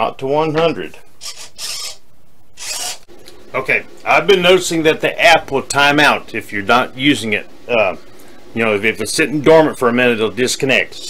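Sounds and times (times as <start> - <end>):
servos buzzing: 1.2 - 3.1.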